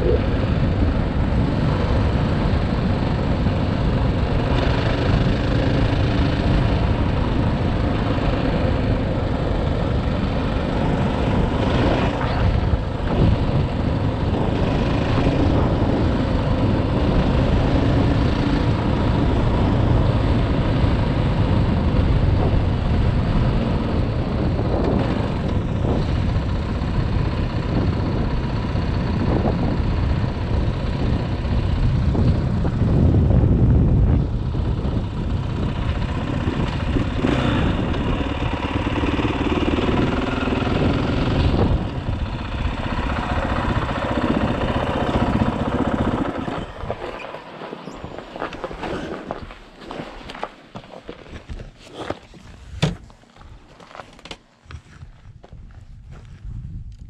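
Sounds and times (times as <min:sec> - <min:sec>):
dirt bike engine running and idling: 0:00.0 - 0:57.0.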